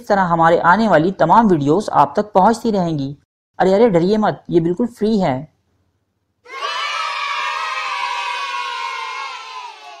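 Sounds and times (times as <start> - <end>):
children cheering: 6.5 - 10.0.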